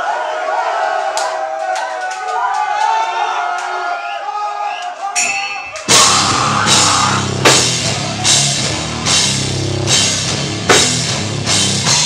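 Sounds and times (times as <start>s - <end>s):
drums and cymbal accents: 5.2s - 12.0s
heavy distorted guitars: 5.9s - 12.0s.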